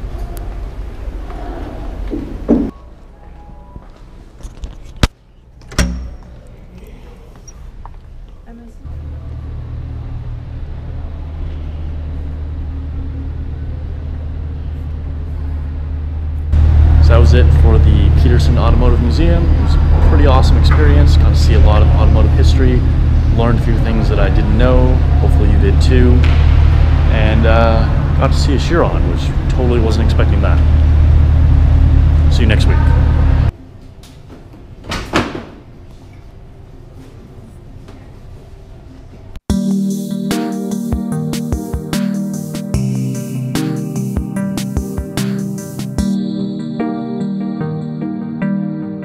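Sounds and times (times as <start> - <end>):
steady low hum: 0.0 - 34.8.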